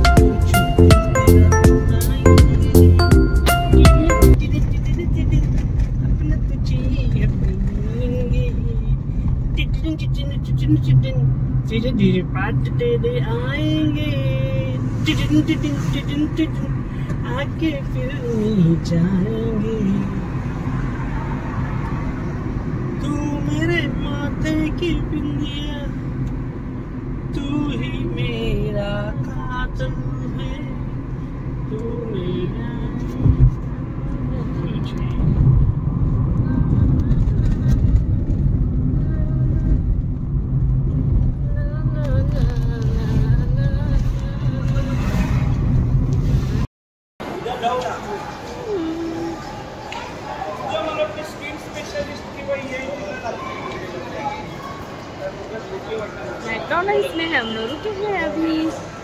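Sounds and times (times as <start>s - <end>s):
car engine and road rumble: 0.0s - 59.0s
low thump: 33.2s - 33.6s.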